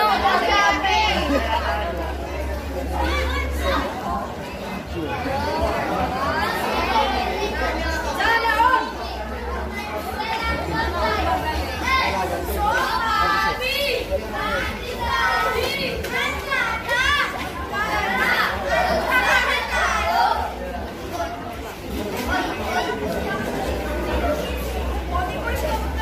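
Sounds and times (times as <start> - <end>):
children shouting and chattering: 0.0 - 26.0.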